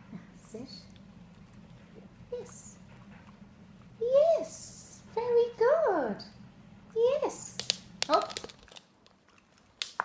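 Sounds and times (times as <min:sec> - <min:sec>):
dog claws clicking on wooden floor: 0:07.5 - 0:10.0.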